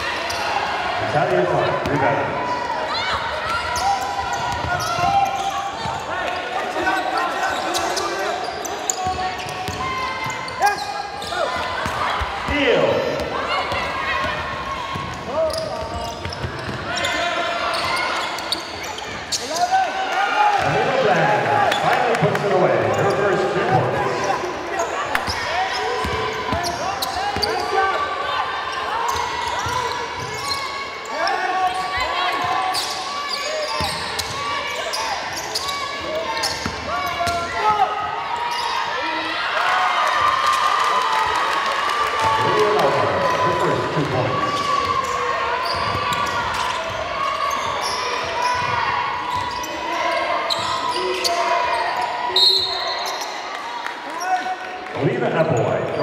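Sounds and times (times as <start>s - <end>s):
basketball bouncing on court: 13.2s - 16.9s, 26.0s - 27.6s, 36.4s - 37.6s.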